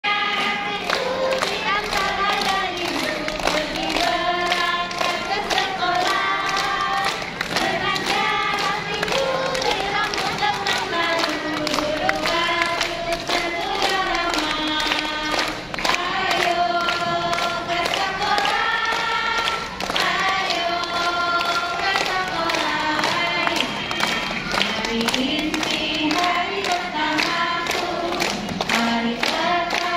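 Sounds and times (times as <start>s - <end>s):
children singing in unison: 0.0s - 29.9s.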